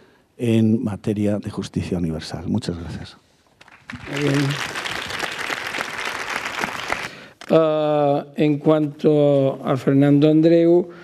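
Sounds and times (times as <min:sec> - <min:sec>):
audience applause: 0:03.6 - 0:07.4.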